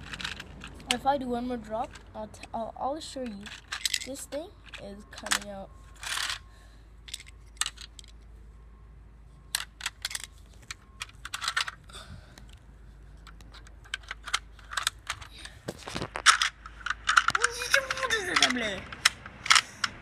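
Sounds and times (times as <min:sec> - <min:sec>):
toy car clicking and clattering: 0:00.0 - 0:08.2, 0:09.5 - 0:20.0.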